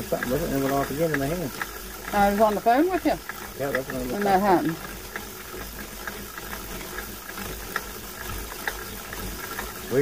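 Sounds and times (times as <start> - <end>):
faint ticks: 0.0 - 10.0.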